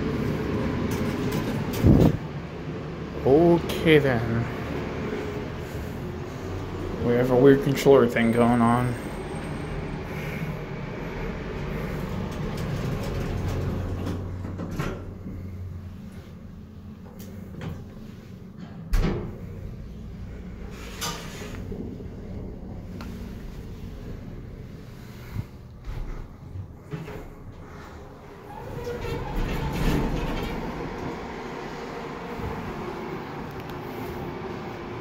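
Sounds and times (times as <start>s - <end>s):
elevator low hum: 0.0s - 35.0s
sliding doors moving: 0.0s - 35.0s
elevator clunks: 11.6s - 15.4s, 25.9s - 33.1s.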